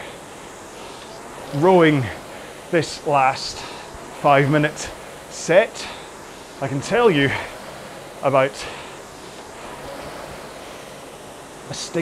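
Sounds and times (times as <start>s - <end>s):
flywheel air rushing: 0.0s - 12.0s.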